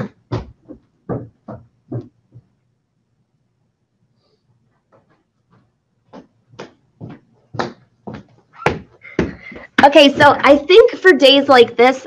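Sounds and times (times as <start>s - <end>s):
footsteps on hard floor: 0.0s - 2.6s, 4.8s - 10.7s.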